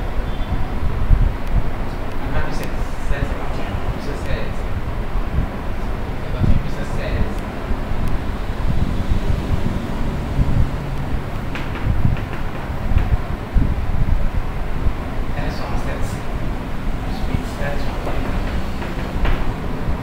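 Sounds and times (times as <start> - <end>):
steady low rumble: 0.0 - 20.0
man speaking: 2.2 - 4.8, 6.2 - 7.5, 15.3 - 16.4, 17.0 - 19.1.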